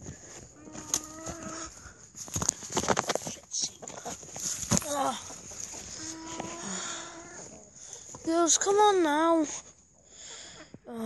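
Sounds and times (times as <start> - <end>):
farm animal calling: 0.5 - 1.8, 5.2 - 8.9.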